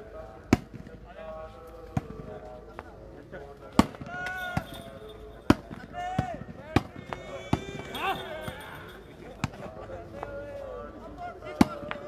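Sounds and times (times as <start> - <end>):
players shouting: 3.9 - 9.7, 11.2 - 12.0
volleyball slaps: 11.6 - 12.0.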